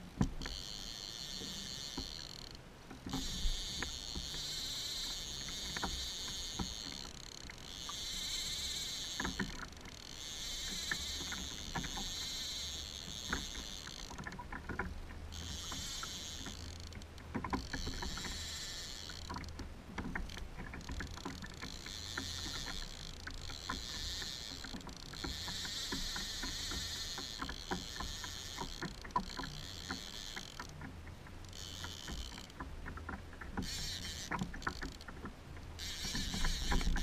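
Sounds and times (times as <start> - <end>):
rumble of wind and water: 0.0 - 37.0
fishing reel clicking: 0.2 - 37.0.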